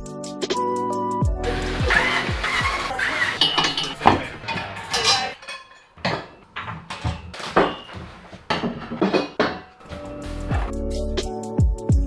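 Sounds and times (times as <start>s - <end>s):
background music with a beat: 0.0s - 2.9s, 9.8s - 12.0s
cordless drill whirring: 1.4s - 3.4s.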